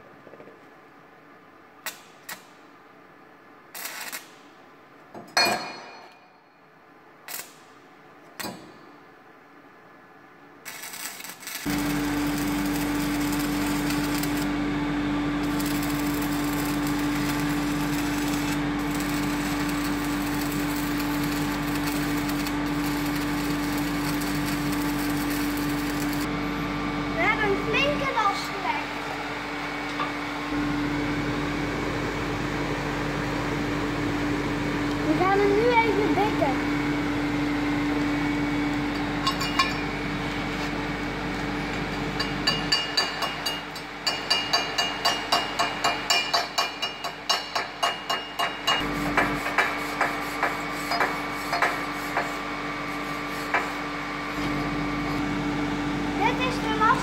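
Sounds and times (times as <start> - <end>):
arc welding crackling and buzzing: 3.7 - 4.6, 7.2 - 8.9, 10.6 - 29.2, 48.6 - 57.0.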